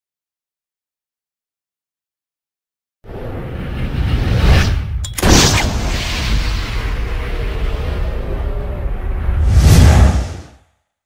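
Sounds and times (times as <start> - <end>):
whoosh: 3.1 - 10.6
low rumble: 5.6 - 10.5.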